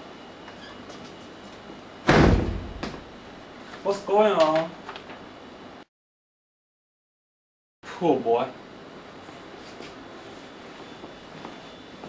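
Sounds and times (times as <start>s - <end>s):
loud slam: 2.1s - 3.1s.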